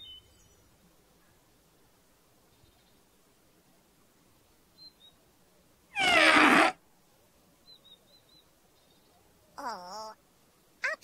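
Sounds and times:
toy trumpet note sliding down: 6.0 - 6.7.

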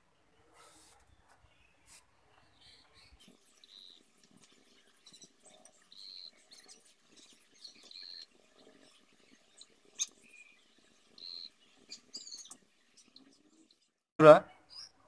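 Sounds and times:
faint bird chirps: 0.1 - 15.0.

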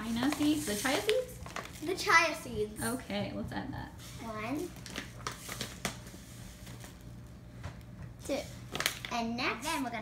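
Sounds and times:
plastic pouch crinkling: 0.0 - 1.9, 4.7 - 7.0.

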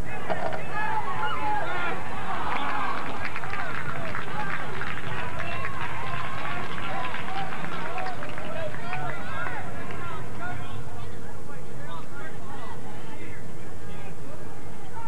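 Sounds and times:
voices shouting and calling out: 0.0 - 15.0.

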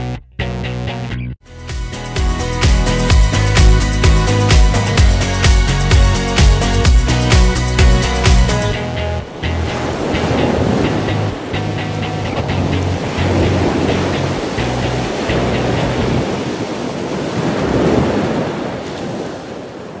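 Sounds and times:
music with low bass line: 0.0 - 16.2
ocean waves washing in: 2.1 - 20.0.

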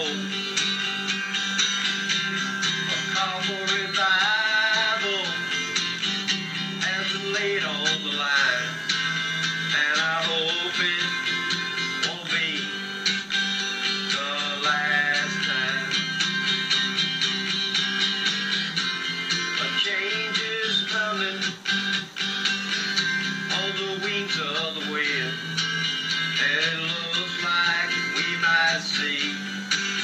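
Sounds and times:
acoustic guitar strumming: 0.0 - 30.0.

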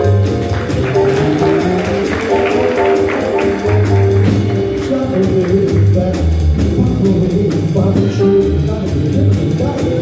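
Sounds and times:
upright bass notes: 0.0 - 10.0.

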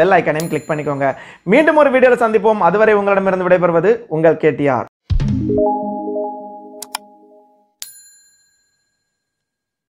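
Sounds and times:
bell ding: 5.6 - 9.4.

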